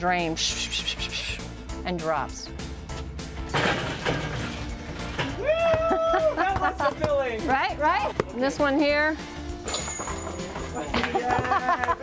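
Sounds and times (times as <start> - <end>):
basketball rattling in metal grill: 3.5 - 5.4.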